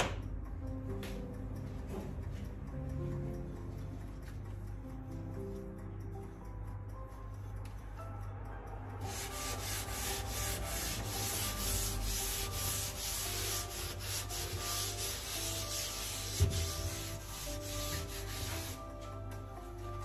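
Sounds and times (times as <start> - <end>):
cloth scrubbing a range hood: 9.1 - 19.0.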